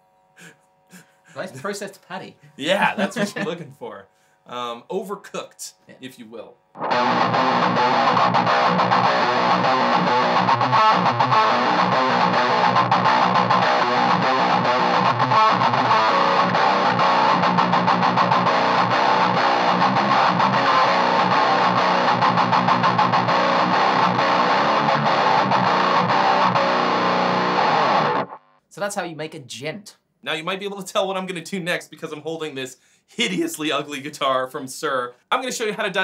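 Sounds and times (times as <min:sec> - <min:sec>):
distorted electric guitar riff: 0:06.7 - 0:28.6.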